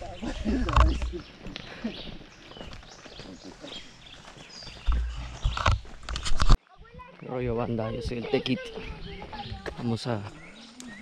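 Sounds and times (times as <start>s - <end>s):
footsteps crunching on dirt: 0.0s - 11.0s
faint voices: 6.6s - 11.0s.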